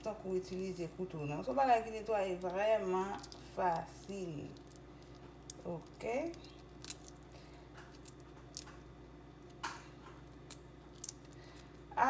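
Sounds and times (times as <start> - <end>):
faint steady hum: 0.0 - 12.0
shrimp shells cracking: 1.9 - 11.9.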